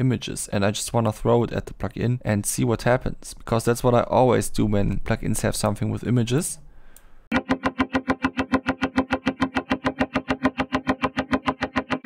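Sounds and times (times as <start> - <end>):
fast plucked notes: 7.3 - 12.0.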